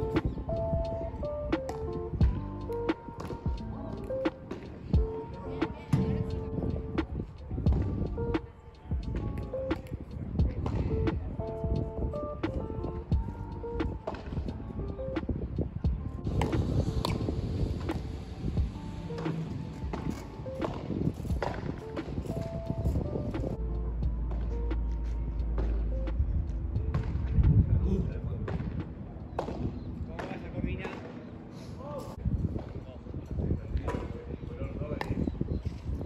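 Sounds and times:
music with a beat: 0.0 - 27.8
padel ball struck by rackets: 16.3 - 18.1.

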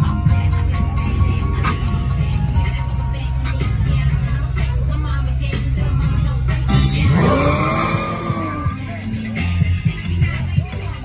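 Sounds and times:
car engine revving hard: 7.0 - 8.8
tires squealing: 7.0 - 8.9.

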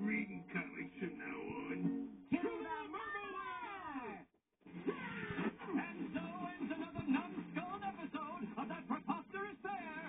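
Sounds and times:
cartoon sounds from television: 0.0 - 10.0.

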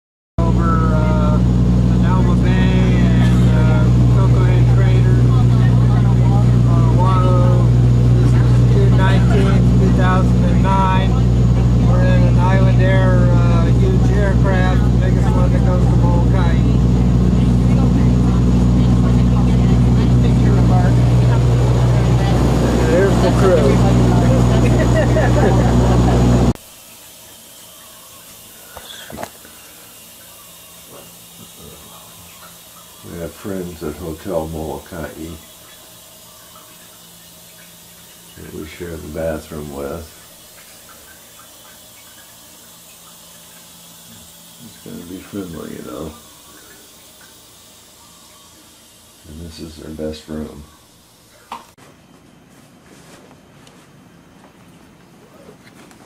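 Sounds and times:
people talking: 0.4 - 26.6, 30.9 - 31.9, 33.0 - 35.4, 38.4 - 40.2, 44.1 - 46.3, 49.2 - 50.7
turboprop engine drone: 0.4 - 51.8.

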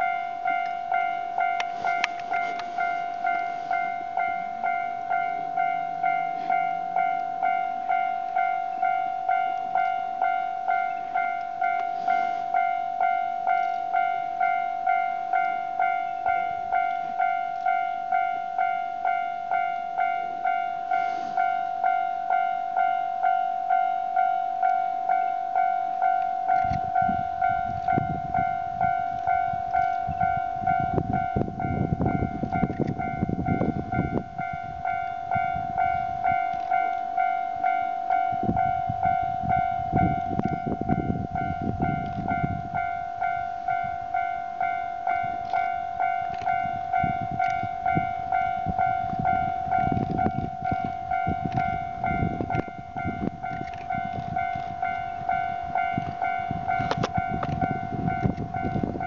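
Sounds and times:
level crossing alarm ringing: 0.0 - 59.0.

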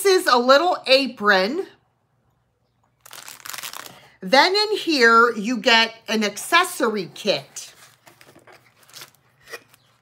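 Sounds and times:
plastic wrapping crinkling: 3.0 - 4.2, 7.7 - 10.0.

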